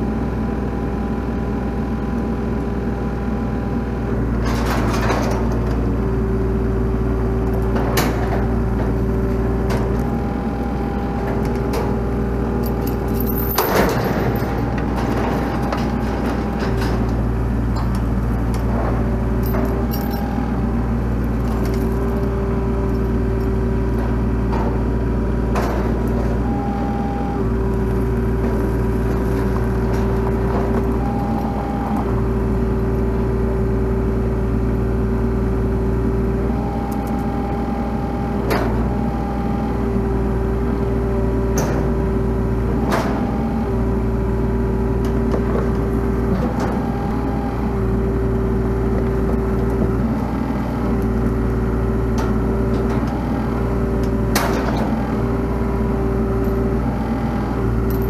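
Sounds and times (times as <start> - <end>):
diesel engine running: 0.0 - 58.0
hydraulic whine: 4.2 - 58.0.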